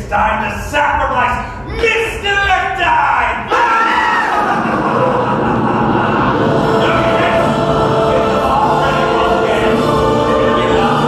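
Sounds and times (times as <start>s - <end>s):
choral music with held notes: 3.5s - 11.0s.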